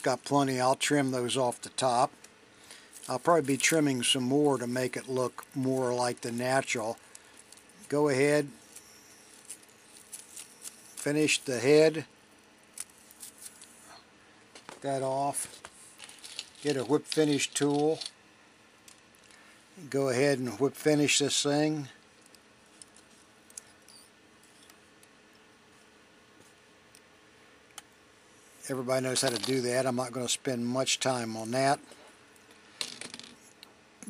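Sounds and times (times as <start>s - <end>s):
fingers rustling thread: 6.2s - 11.5s, 12.7s - 13.9s, 14.5s - 18.2s.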